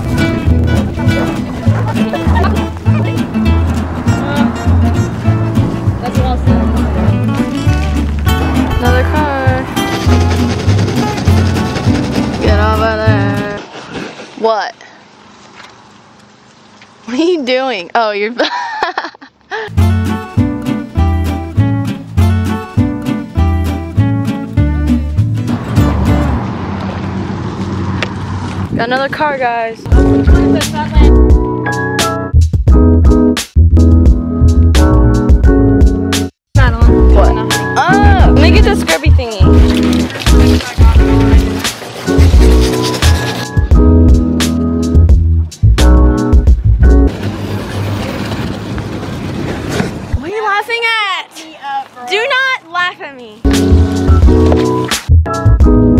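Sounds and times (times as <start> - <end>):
upbeat acoustic guitar music: 0.0 - 13.6, 19.7 - 26.4, 28.8 - 47.1, 52.1 - 55.9
person speaking: 36.6 - 41.4.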